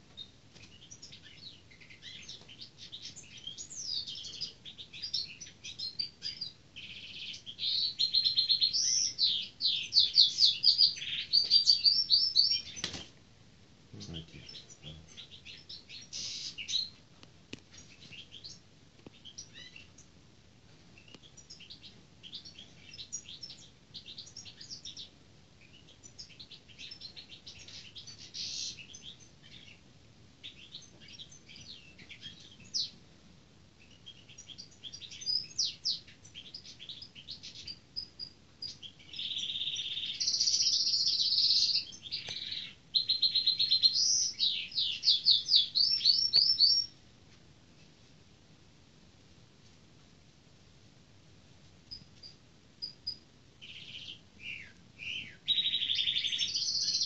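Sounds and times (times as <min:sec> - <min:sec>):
songbird twittering song: 0:00.0 - 0:13.0, 0:14.0 - 0:17.0, 0:17.6 - 0:20.2, 0:21.0 - 0:33.0, 0:33.8 - 0:47.0, 0:51.9 - 0:57.0.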